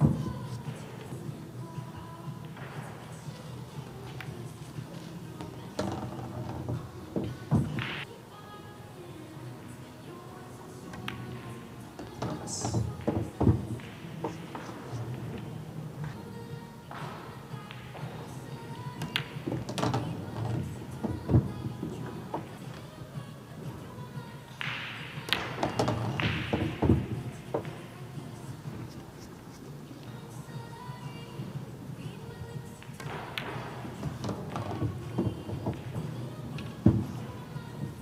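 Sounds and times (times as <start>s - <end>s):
pool balls clicking: 0.0s - 8.1s, 9.6s - 38.0s
background music: 0.0s - 38.0s
balls knocking on rails: 3.8s - 8.0s, 10.9s - 15.6s, 16.9s - 22.6s, 24.6s - 27.9s, 32.8s - 38.0s
ball dropping into pocket: 24.6s - 27.8s.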